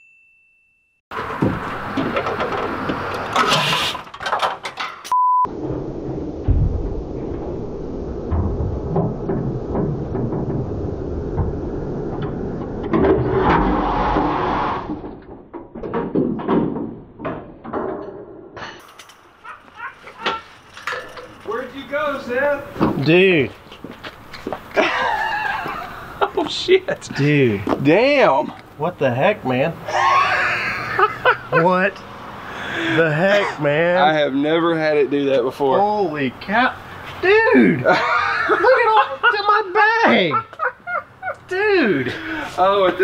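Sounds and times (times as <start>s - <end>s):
diesel engine cranking without starting: 1.2s - 5.0s.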